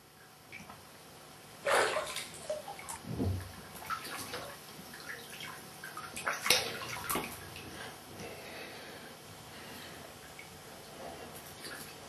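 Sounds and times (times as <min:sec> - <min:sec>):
water splashing in toilet bowl: 0:01.6 - 0:07.6.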